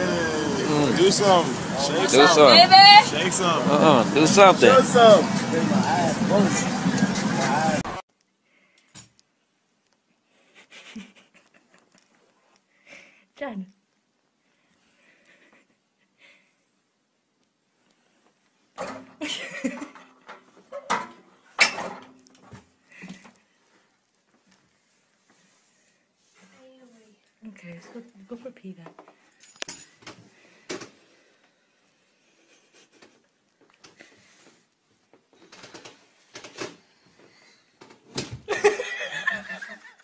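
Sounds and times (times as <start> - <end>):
loud laughter: 38.5 - 40.0.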